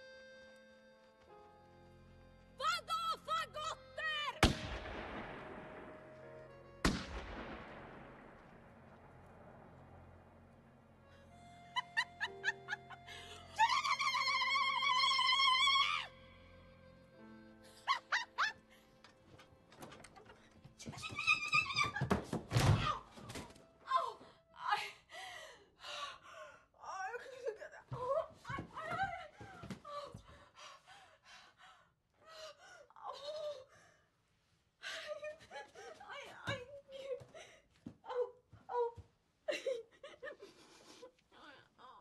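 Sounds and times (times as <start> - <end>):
woman screaming: 21.0 - 22.1.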